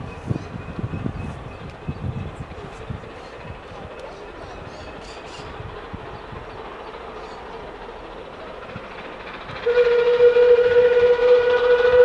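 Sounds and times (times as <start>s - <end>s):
steam locomotive rumble: 0.0s - 12.0s
steam locomotive whistle: 9.6s - 12.0s.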